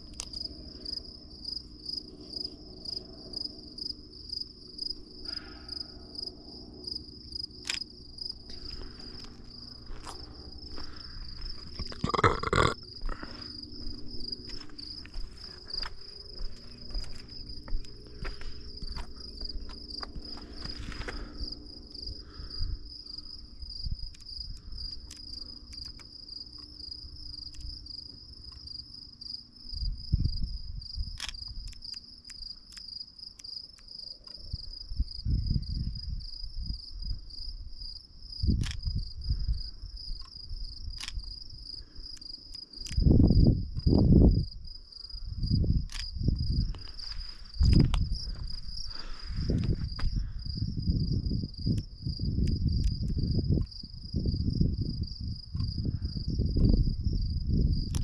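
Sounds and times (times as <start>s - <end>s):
crickets chirping: 0.0s - 58.0s.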